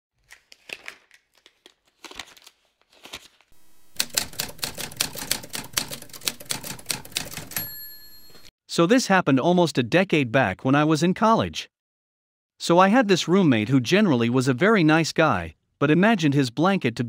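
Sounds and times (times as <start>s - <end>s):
typewriter typing: 3.8s - 8.5s
typewriter bell ringing: 4.1s - 8.5s.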